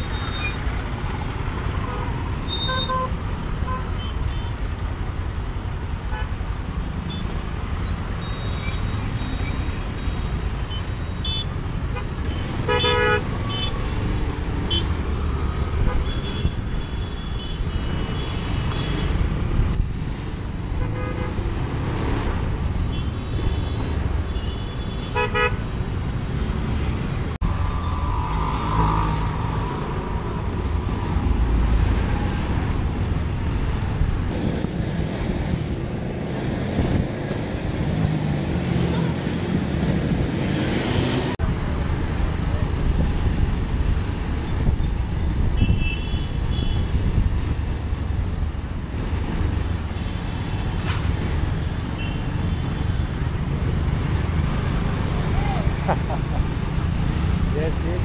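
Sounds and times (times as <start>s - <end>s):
road noise: 0.0s - 58.0s.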